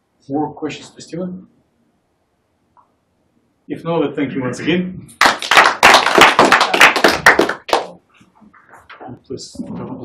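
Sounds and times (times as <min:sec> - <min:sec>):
audience clapping: 0:05.2 - 0:08.0.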